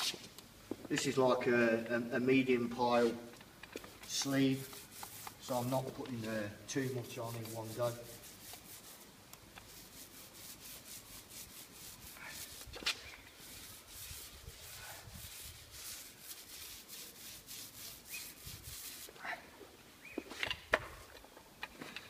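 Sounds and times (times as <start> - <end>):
paint roller rubbing on concrete: 2.4 - 19.4.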